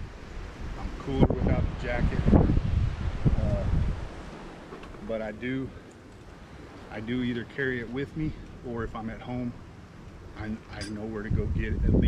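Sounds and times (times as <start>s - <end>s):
wind buffeting microphone: 0.0s - 5.4s, 6.6s - 12.0s.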